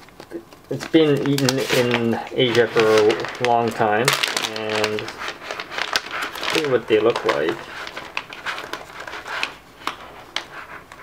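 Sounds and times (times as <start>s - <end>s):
sharp crackles: 0.0s - 8.8s
plastic bag crinkling: 0.0s - 11.0s.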